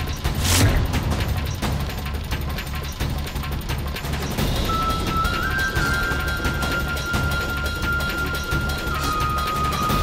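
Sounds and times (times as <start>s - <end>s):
background music with low pulse: 0.0s - 10.0s.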